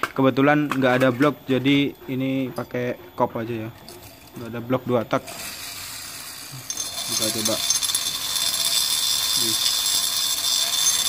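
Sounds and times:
rotary grinder whining: 5.2s - 11.0s.

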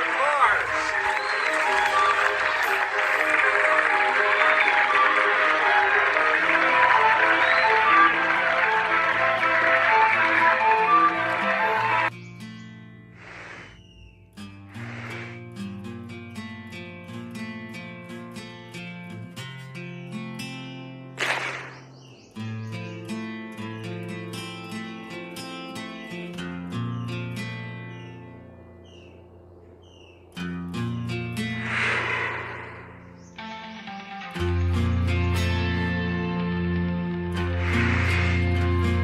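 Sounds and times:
background music: 0.0s - 12.1s, 31.2s - 39.0s
crowd cheering and applause: 0.0s - 12.1s, 37.4s - 39.0s
plucked guitar music: 0.8s - 13.1s, 15.4s - 29.1s, 30.3s - 31.6s, 33.2s - 39.0s
whoosh: 31.4s - 33.3s.

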